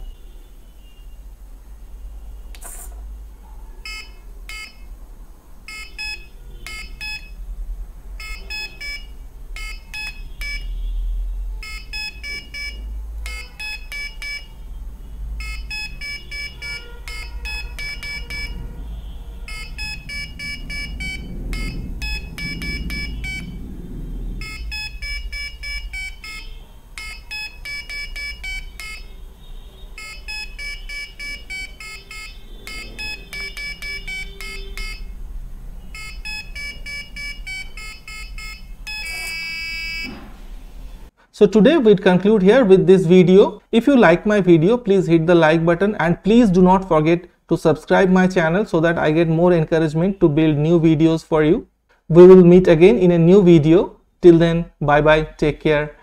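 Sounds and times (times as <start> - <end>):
short electronic beeps: 3.8 - 4.8, 5.7 - 7.4, 8.2 - 10.9, 11.6 - 14.6, 15.4 - 23.6, 24.4 - 29.2, 29.9 - 35.1, 35.8 - 40.2
steady low hum: 11.4 - 41.1.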